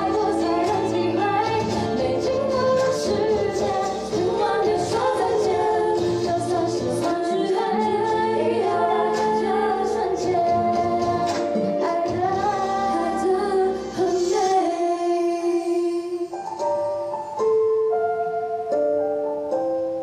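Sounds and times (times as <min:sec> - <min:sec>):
instrumental accompaniment: 0:00.0 - 0:14.8, 0:16.2 - 0:20.0
woman singing through pa: 0:00.0 - 0:16.3.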